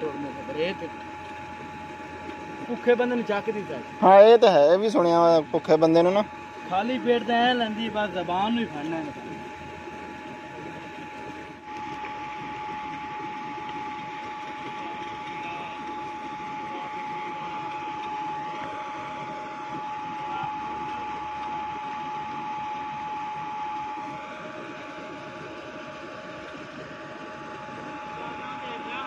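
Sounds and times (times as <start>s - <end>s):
electric pump motor whining: 0.0s - 29.0s.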